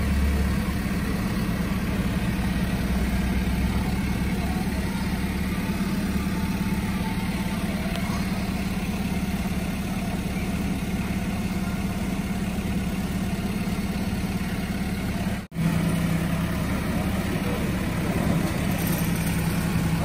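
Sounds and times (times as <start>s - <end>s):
diesel truck engine idling: 0.0s - 20.0s.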